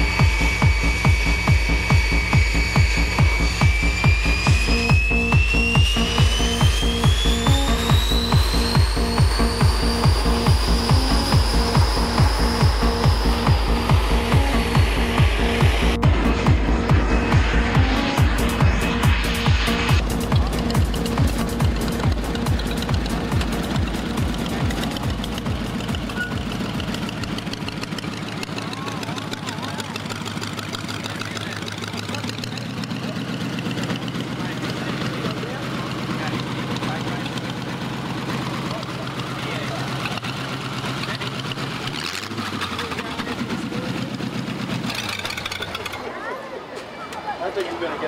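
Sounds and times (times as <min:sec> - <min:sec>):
music: 0:00.0 - 0:29.6
hot rod engine idling: 0:00.0 - 0:46.4
crowd voices: 0:00.0 - 0:48.0.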